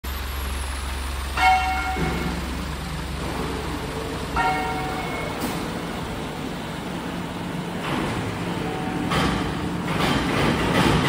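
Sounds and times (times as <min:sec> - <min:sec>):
moulding machine humming: 0:00.0 - 0:11.0
loud ringing note: 0:01.3 - 0:09.6.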